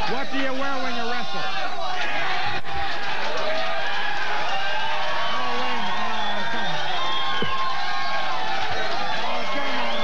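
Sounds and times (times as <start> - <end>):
studio audience shouting: 0.0 - 10.0.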